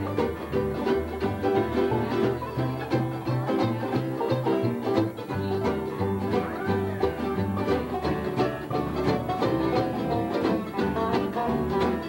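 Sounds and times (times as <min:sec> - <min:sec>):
acoustic guitar strumming: 0:00.0 - 0:12.0
banjo picking: 0:00.0 - 0:12.0.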